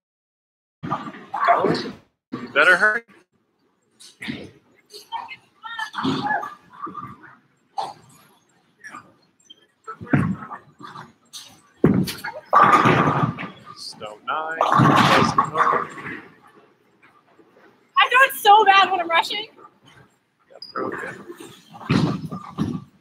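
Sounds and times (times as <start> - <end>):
bowling balls rolling: 4.0 - 23.0
excited voices and yelps: 5.0 - 7.4, 18.0 - 19.6.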